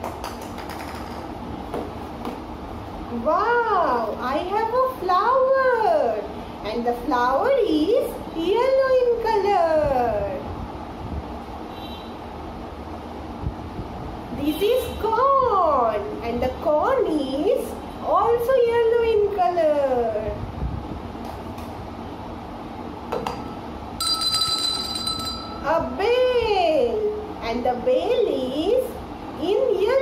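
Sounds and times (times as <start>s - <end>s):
hand bell ringing: 24.0s - 26.0s.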